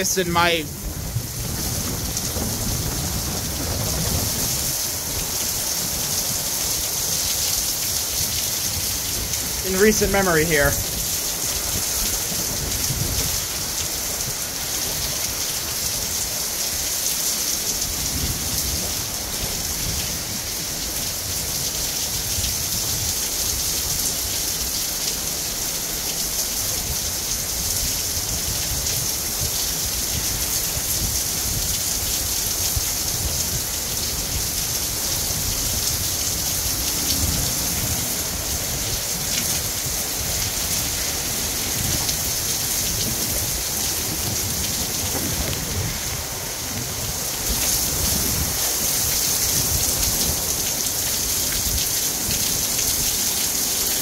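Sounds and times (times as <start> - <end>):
wind gusts buffeting microphone: 0.0 - 7.3, 10.6 - 16.2, 26.8 - 53.1
heavy rain pouring: 0.0 - 54.0.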